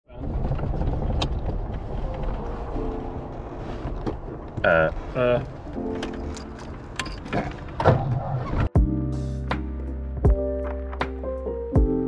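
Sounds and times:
car engine rumble from inside cabin: 0.1 - 6.0.

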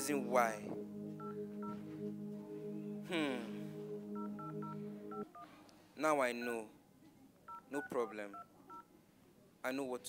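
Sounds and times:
steady low drone: 0.0 - 5.2
phone keypad tones: 4.2 - 5.4, 7.5 - 8.8.

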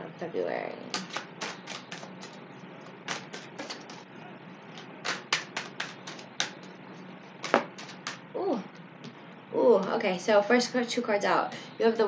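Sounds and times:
cards being shuffled: 0.9 - 2.4, 3.0 - 4.0, 4.8 - 6.7, 7.4 - 8.2.

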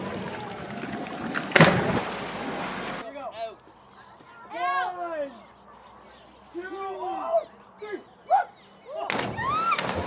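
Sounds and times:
loud splash into water: 1.4 - 2.9.

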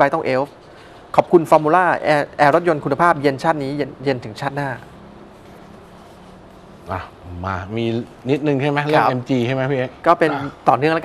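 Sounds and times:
man speaking: 6.9 - 11.0.

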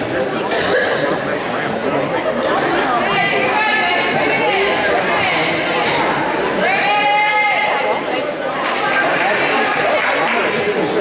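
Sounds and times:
chatter of many voices echoing: 0.0 - 11.0.

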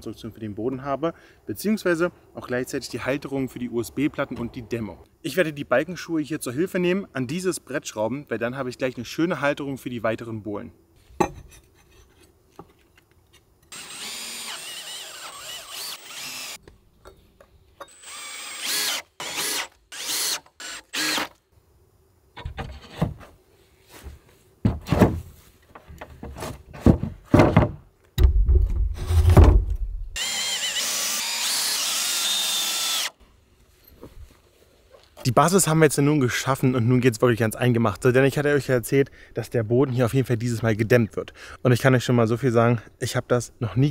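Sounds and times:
power drill driving screws: 13.7 - 16.6, 17.9 - 21.4, 30.2 - 33.2
heavy knocks of wood: 24.6 - 29.8.

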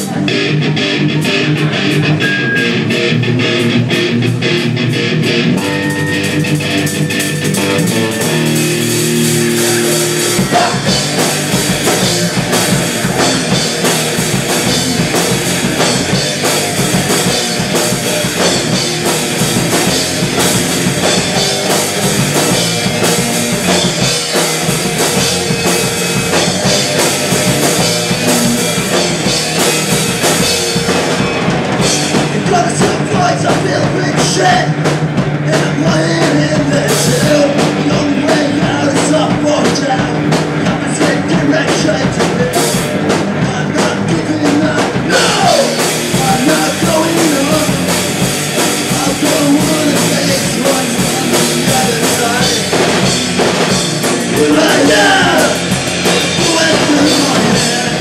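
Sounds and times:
bass guitar: 0.0 - 58.0
drums: 0.0 - 58.0
electric guitar: 0.0 - 58.0.

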